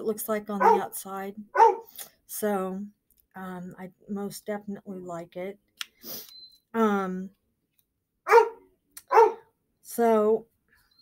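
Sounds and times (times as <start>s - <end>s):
dog barking: 0.6s - 0.9s, 1.5s - 1.9s, 8.3s - 9.5s.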